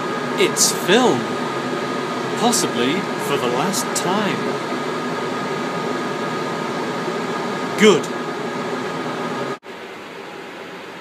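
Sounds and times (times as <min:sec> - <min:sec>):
ventilation hum and hiss: 0:00.0 - 0:11.0.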